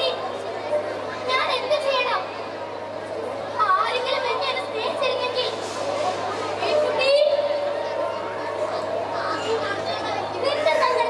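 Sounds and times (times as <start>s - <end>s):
children speaking through microphones: 0.0s - 11.0s.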